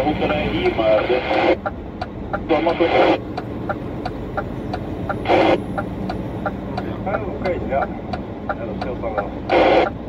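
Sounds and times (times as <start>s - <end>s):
voice talking over radio: 0.0s - 1.6s, 2.3s - 3.2s, 5.1s - 5.6s, 6.8s - 9.9s
truck cab drone: 0.0s - 10.0s.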